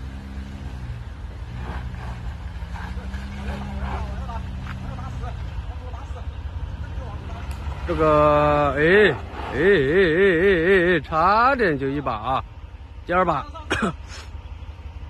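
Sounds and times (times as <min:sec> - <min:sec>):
suv engine climbing: 0:00.0 - 0:15.0.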